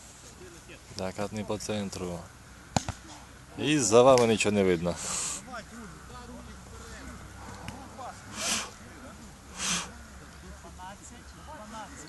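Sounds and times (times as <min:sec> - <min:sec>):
people talking in background: 0:00.3 - 0:12.0.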